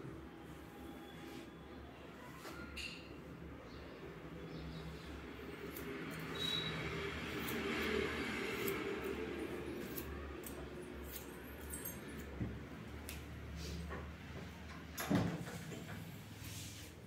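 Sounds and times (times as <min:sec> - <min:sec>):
scissors snipping hair: 0:07.3 - 0:09.2, 0:09.8 - 0:12.3, 0:13.0 - 0:13.3.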